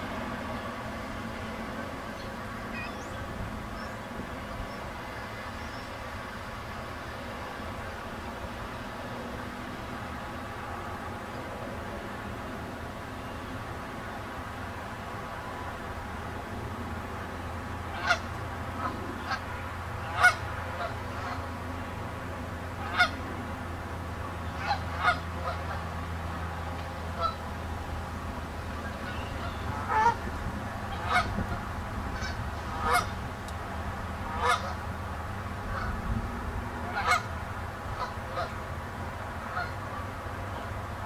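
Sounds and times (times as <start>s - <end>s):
geese honking: 17.9s - 21.5s, 22.8s - 23.2s, 24.4s - 25.9s, 27.2s - 27.4s, 28.7s - 30.2s, 30.9s - 33.2s, 34.3s - 34.8s, 35.7s - 36.0s, 36.8s - 37.3s, 38.0s - 38.6s, 39.5s - 40.0s.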